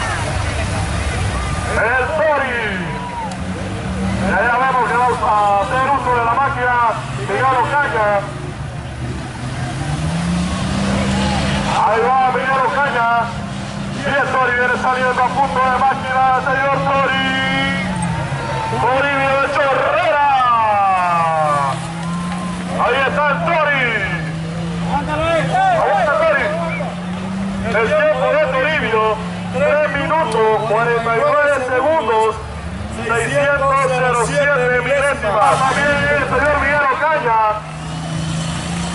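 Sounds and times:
off-road vehicle engine revving: 0:00.0 - 0:38.9
man speaking through microphone: 0:01.7 - 0:03.1, 0:04.2 - 0:08.4, 0:11.7 - 0:18.0, 0:18.7 - 0:21.8, 0:22.7 - 0:27.0, 0:27.6 - 0:37.7.

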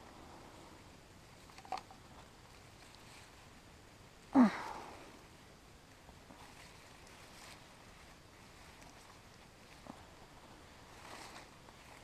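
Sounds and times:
plant leaves rustling: 0:06.2 - 0:12.0.

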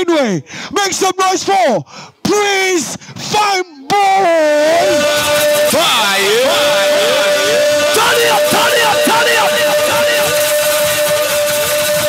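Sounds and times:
live band held note: 0:04.2 - 0:12.0
short sliding phrases: 0:04.6 - 0:11.7.

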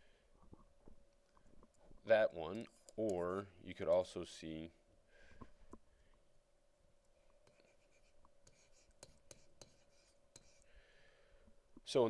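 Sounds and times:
faint steady hum: 0:00.0 - 0:12.0
stylus tapping and scratching: 0:07.3 - 0:10.7.

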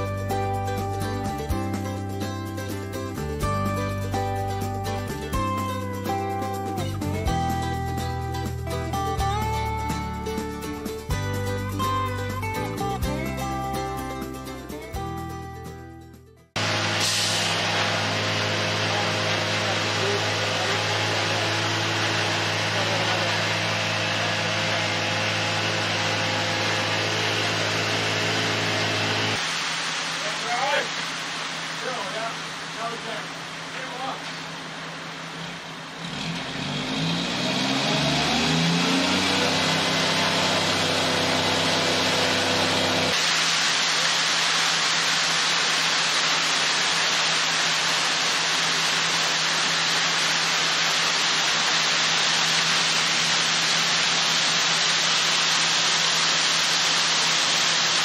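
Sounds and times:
diesel truck engine revving: 0:16.6 - 0:29.4, 0:35.0 - 0:43.2.

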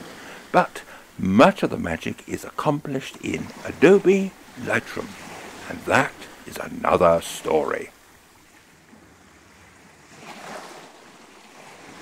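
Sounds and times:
faint surf on shore: 0:00.0 - 0:12.0.

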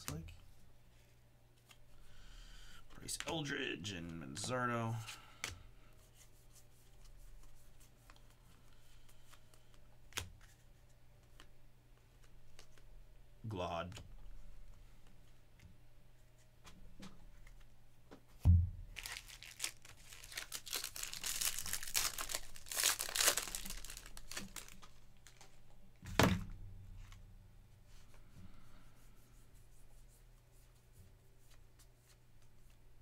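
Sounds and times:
foil wrapper tearing and crinkling: 0:19.0 - 0:25.4.

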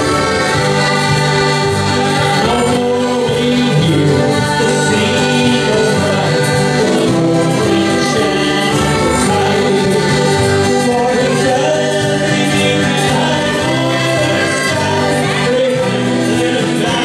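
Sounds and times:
accordions: 0:00.0 - 0:17.0
acoustic guitar: 0:00.0 - 0:17.0
fiddle: 0:00.0 - 0:17.0
hand percussion: 0:00.0 - 0:17.0.

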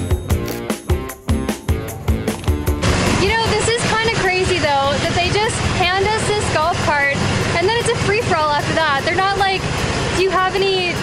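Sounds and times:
golf cart rumbling: 0:01.7 - 0:11.0
woman talking: 0:03.2 - 0:11.0.

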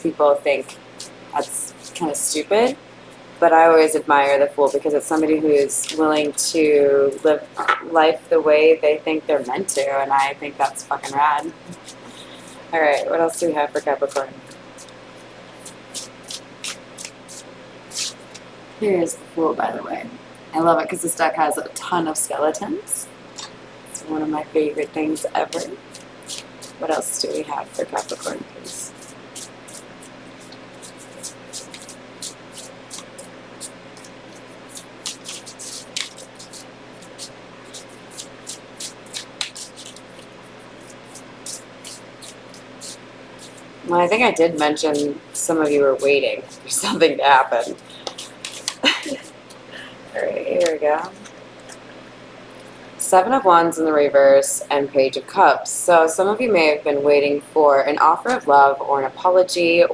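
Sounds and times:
cards being shuffled: 0:04.7 - 0:06.3, 0:13.7 - 0:18.4, 0:25.4 - 0:49.6, 0:50.4 - 0:52.0.

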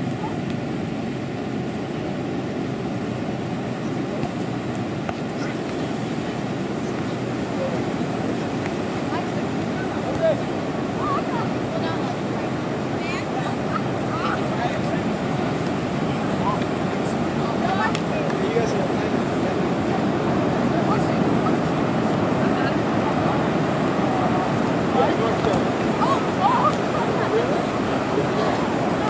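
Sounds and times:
ocean surf: 0:00.0 - 0:29.0
wind: 0:00.0 - 0:29.0
people calling out and chattering: 0:03.1 - 0:29.0.

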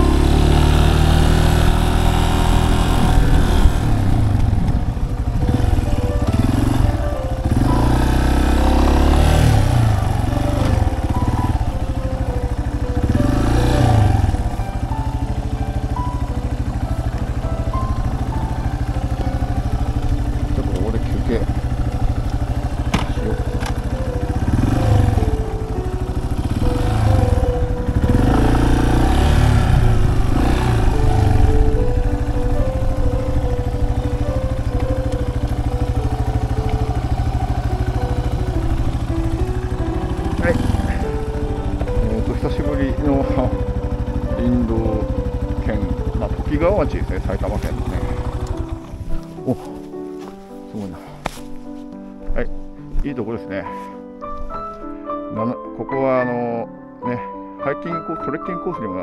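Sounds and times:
motorcycle engine revving and idling: 0:00.0 - 0:51.4
simple background music melody: 0:00.0 - 0:59.0.

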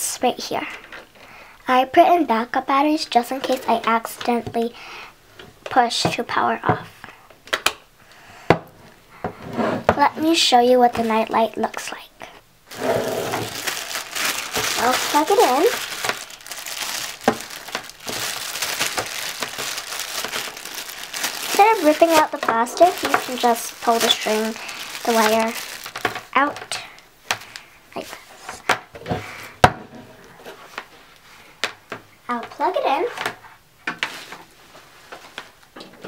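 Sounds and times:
plastic bag crinkling: 0:12.7 - 0:27.7
faint handling rustles: 0:12.7 - 0:29.4, 0:32.5 - 0:35.8.

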